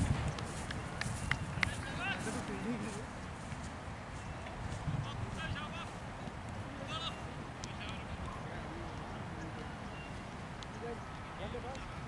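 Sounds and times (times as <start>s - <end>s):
distant people talking: 4.4s - 12.0s.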